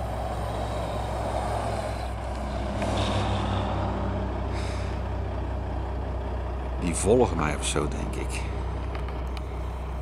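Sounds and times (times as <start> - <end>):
truck diesel engine running: 0.0 - 10.0.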